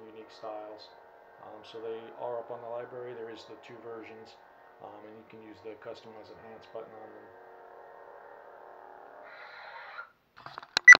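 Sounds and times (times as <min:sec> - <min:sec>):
lightsaber humming: 0:00.0 - 0:10.0.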